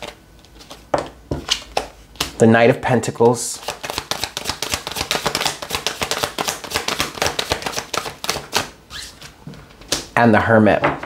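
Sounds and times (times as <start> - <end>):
cards being shuffled: 0.0 - 2.4, 3.2 - 10.1.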